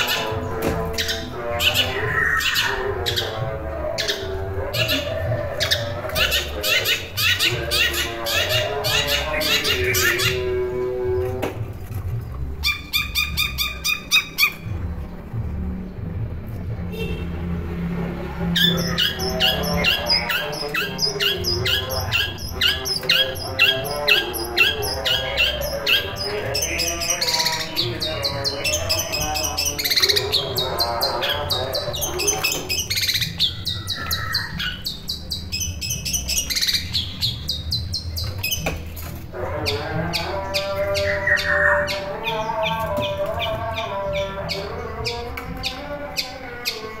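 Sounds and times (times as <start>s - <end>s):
shrike singing harsh chattering: 0.0s - 10.6s, 18.6s - 38.7s, 39.4s - 47.0s.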